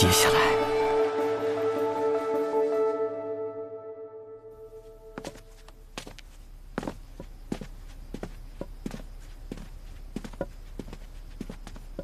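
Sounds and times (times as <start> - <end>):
footsteps walking: 4.7 - 12.0.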